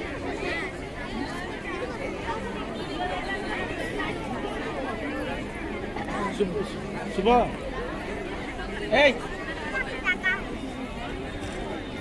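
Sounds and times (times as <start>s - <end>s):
chatter of overlapping voices: 0.0s - 12.0s.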